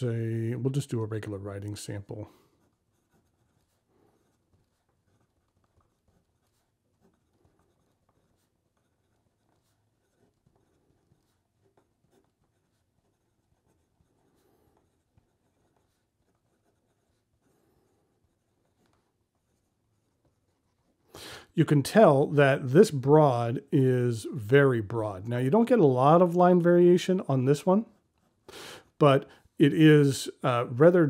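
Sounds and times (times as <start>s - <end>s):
pen scratching on paper: 1.2s - 21.1s.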